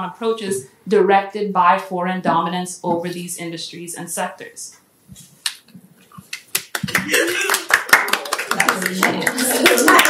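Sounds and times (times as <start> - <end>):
voices in the room: 0.0 - 10.0
audience applause: 6.6 - 10.0.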